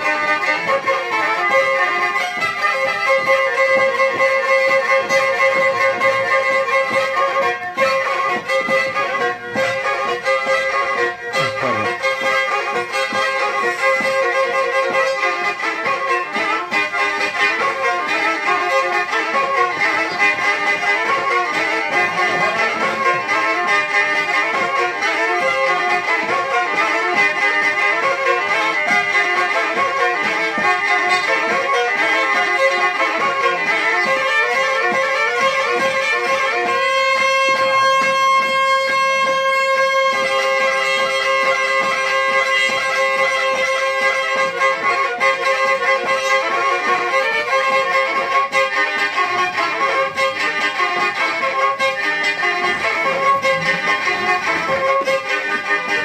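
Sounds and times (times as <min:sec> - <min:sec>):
bowed fiddle fast dance tune: 0:00.0 - 0:56.0
droning strings: 0:00.0 - 0:56.0.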